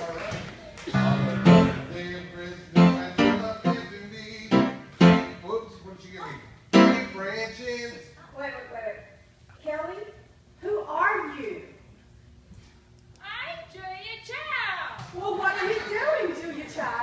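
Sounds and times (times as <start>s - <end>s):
instrument playing loud chords: 0.9s - 3.9s, 4.5s - 5.5s.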